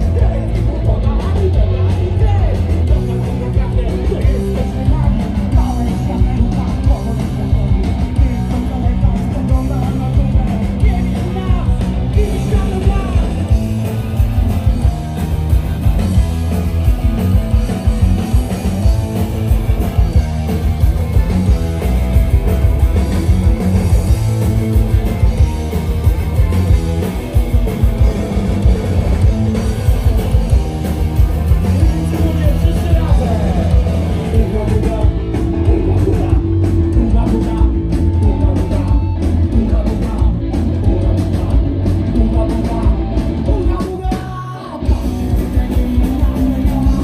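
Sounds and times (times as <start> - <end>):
punk rock band playing: 0.0 - 47.0
person singing: 31.5 - 47.0.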